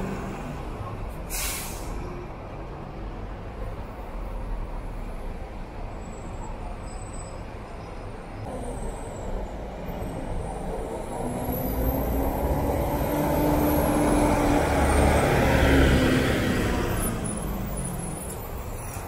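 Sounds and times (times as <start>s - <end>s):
bus engine driving past: 0.0s - 19.0s.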